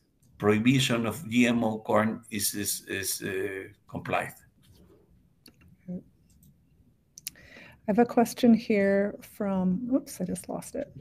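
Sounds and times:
soft breath: 7.3 - 7.9
woman speaking: 7.8 - 11.0.

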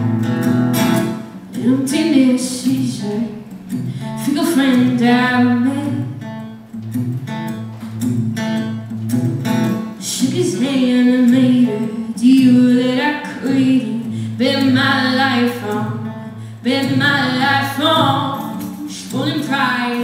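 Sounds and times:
acoustic guitar strumming: 0.0 - 20.0
woman singing: 1.5 - 6.2, 10.0 - 20.0.

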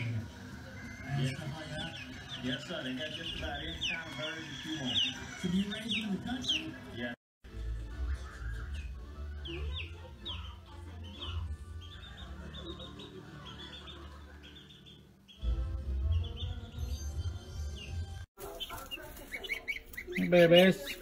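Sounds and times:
chicks peeping: 0.0 - 7.1, 7.8 - 21.0
faint music: 0.0 - 21.0.

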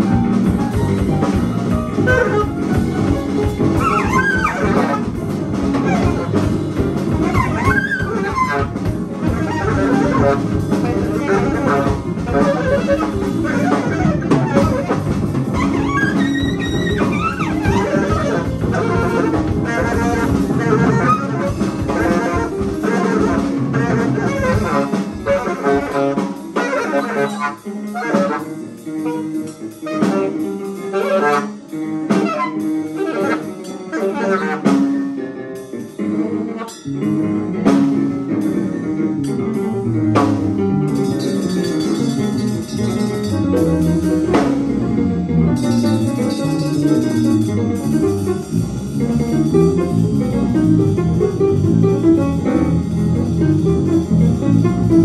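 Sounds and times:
bass: 0.0 - 55.0
drums: 0.0 - 55.0
piano: 0.0 - 55.0
saxophone: 0.8 - 35.2.

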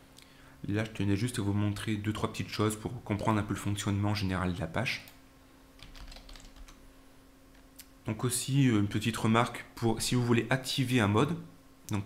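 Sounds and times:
keystrokes on computer keyboard: 5.8 - 6.8.

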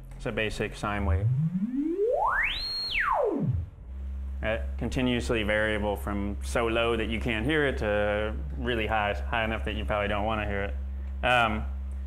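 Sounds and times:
synthesizer sine wave sweep: 0.8 - 8.4.

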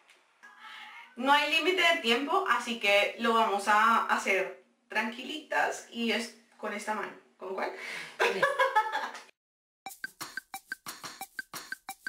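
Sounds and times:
people laughing: 8.2 - 9.3
clicky percussive background music: 9.9 - 12.0.

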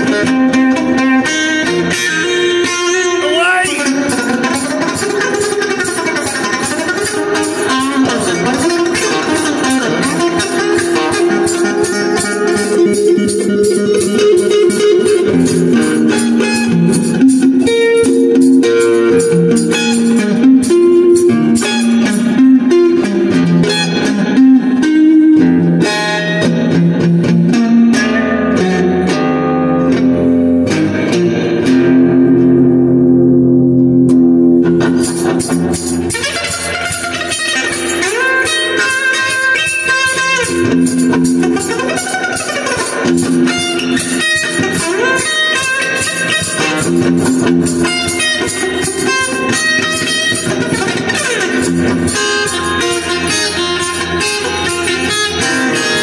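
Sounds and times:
electric guitar picked notes: 0.0 - 56.0.

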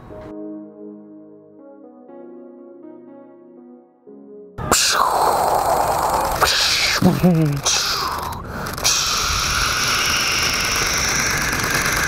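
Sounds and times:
jet hissing whine: 4.6 - 12.0.

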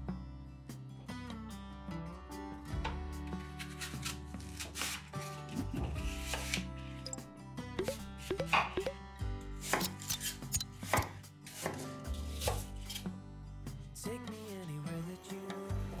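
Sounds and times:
knife chopping on wooden board: 10.9 - 11.8.

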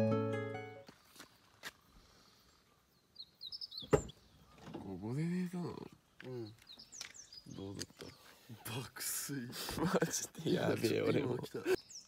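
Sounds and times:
high bird chirps: 2.6 - 4.7.

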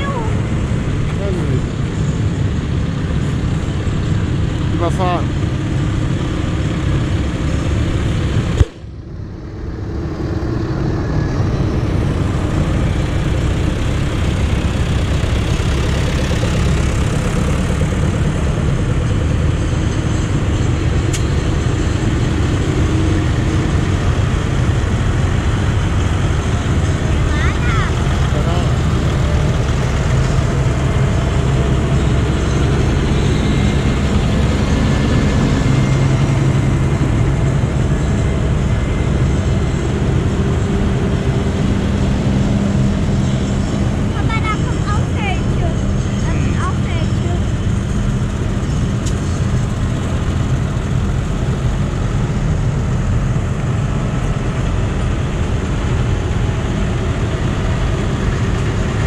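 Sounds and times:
tractor diesel engines rumbling: 0.0 - 59.0.

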